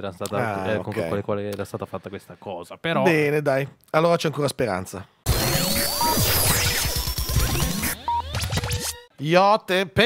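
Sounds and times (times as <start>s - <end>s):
turntable scratching: 5.3s - 9.1s.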